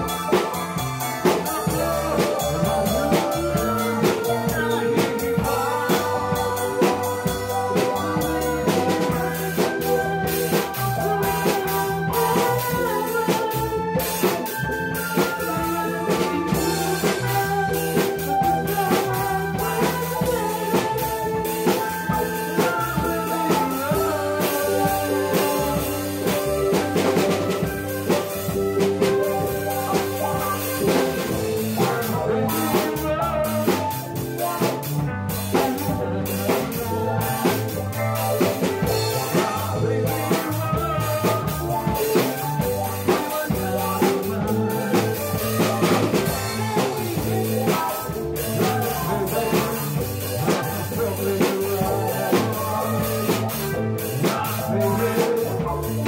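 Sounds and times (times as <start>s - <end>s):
song with drum beat: 0.0s - 56.0s.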